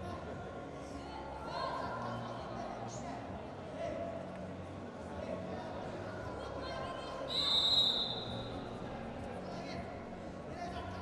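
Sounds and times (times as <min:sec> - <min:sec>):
crowd chatter: 0:00.0 - 0:11.0
referee's whistle blast: 0:07.3 - 0:08.4.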